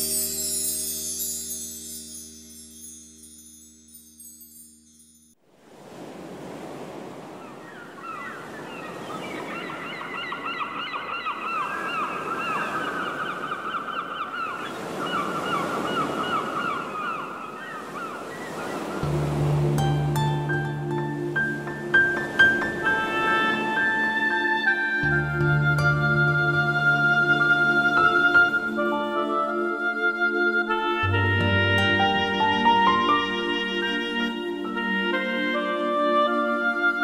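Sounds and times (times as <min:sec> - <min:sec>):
birds chirping: 0:07.4 - 0:19.0
surf rushing: 0:18.2 - 0:24.5
held musical chord: 0:19.0 - 0:36.4.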